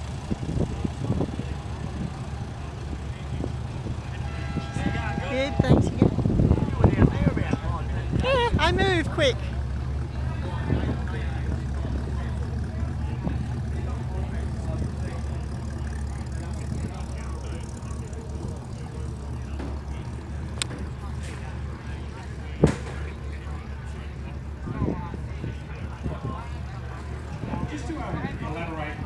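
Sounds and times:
car engine rumbling: 0:00.0 - 0:29.0.

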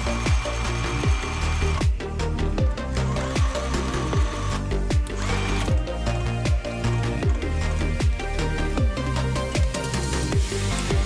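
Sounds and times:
sewing machine motor whine: 0:00.0 - 0:01.8, 0:03.0 - 0:05.8
electronic music with beat: 0:00.0 - 0:11.0.

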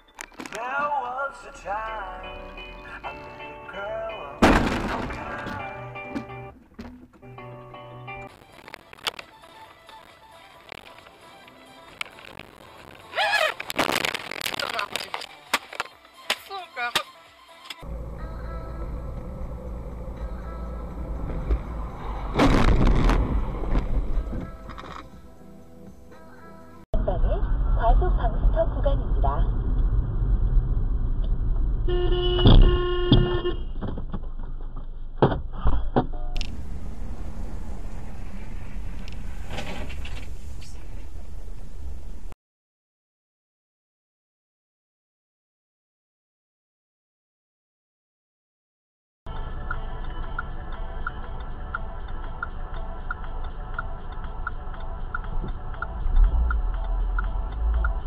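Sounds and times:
car engine and road rumble: 0:00.0 - 0:42.4, 0:49.3 - 0:58.0
car horn long blast: 0:31.9 - 0:33.8
turn signal clicking: 0:49.4 - 0:58.0.

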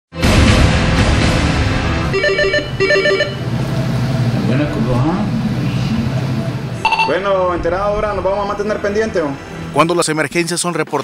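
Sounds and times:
desk telephone ringing: 0:02.1 - 0:03.5, 0:06.9 - 0:07.2.

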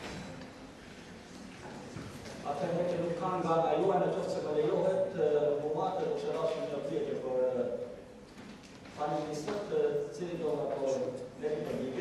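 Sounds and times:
man speaking into a microphone: 0:02.4 - 0:08.0, 0:08.9 - 0:12.0.

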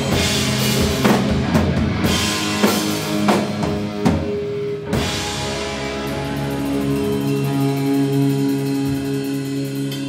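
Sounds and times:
drum strikes: 0:00.0 - 0:10.0
heavy metal band playing: 0:00.0 - 0:10.0.

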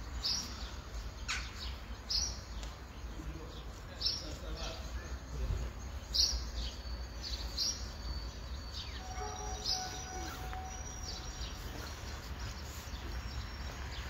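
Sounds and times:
birds chirping: 0:00.0 - 0:14.0.

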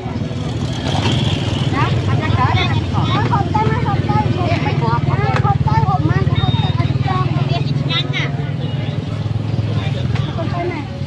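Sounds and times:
motor scooter engine idling: 0:00.1 - 0:11.0
people talking: 0:01.5 - 0:11.0.

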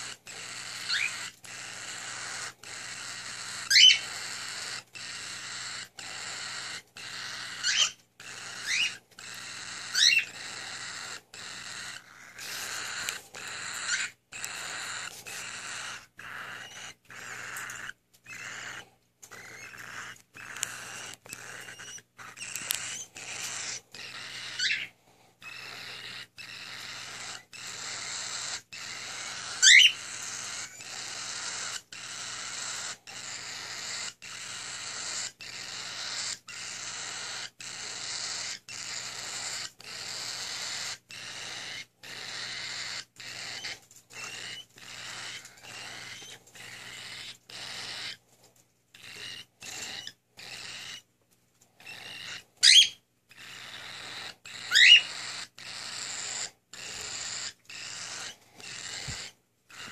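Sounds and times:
chicks raspy begging calls: 0:00.0 - 0:48.2, 0:49.0 - 0:51.0, 0:51.8 - 0:59.9.

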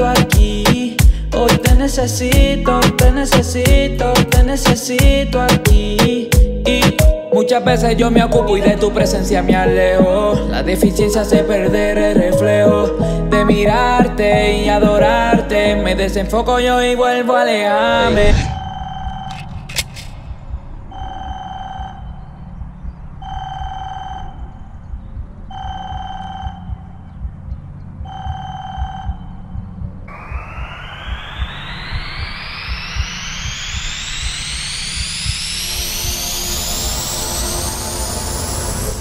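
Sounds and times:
low pulsing bass: 0:00.0 - 0:06.9, 0:07.7 - 0:17.0, 0:18.5 - 0:39.0
rising whoosh: 0:17.8 - 0:22.1, 0:30.0 - 0:39.0
telephone ringing: 0:25.5 - 0:27.0.

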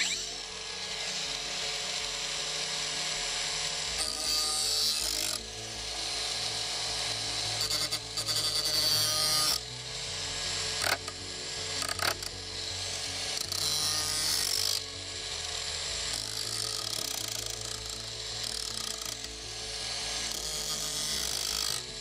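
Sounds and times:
angle grinder grinding a blade: 0:00.0 - 0:22.0.

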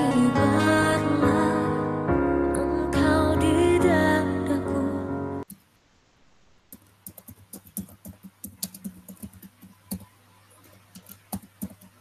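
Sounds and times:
typing on keyboard: 0:06.8 - 0:10.1, 0:10.9 - 0:12.0.

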